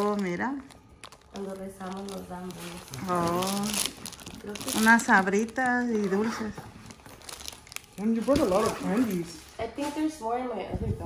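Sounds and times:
plastic candy bag crinkling: 0.0 - 10.0.

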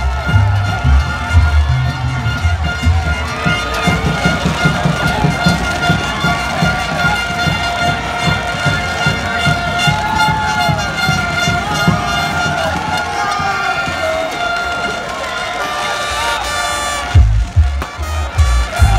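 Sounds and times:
drums beating quick rhythm: 0.0 - 14.8, 17.0 - 18.9.

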